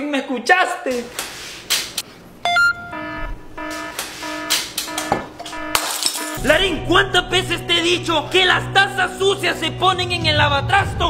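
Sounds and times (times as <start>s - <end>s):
short beeping notes: 2.4s - 6.7s
rising run of electronic tones: 2.5s - 6.4s.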